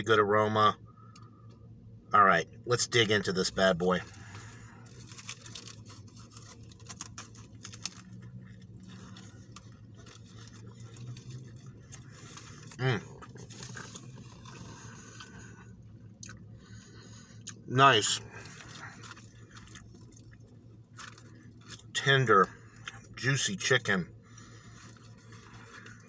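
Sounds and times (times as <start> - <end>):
foil wrapper crinkling: 4.0 - 15.4, 18.3 - 21.9, 24.4 - 26.0
person chewing food: 4.8 - 17.6, 18.4 - 21.9.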